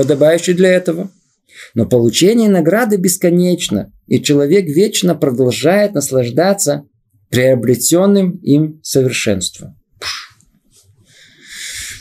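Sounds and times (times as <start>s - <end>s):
man speaking: 0.0s - 10.3s
man breathing in: 10.0s - 12.0s.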